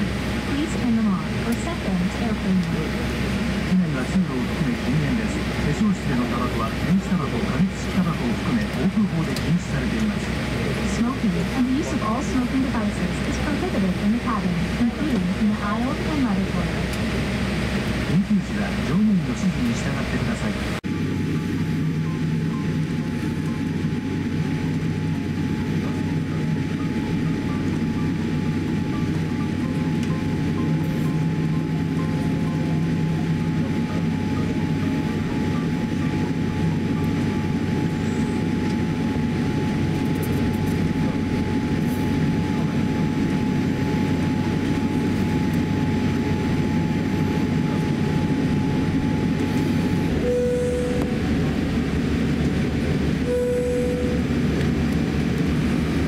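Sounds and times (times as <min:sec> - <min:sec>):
airliner cabin rumble: 0:00.0 - 0:56.0
faint steady whine: 0:00.0 - 0:56.0.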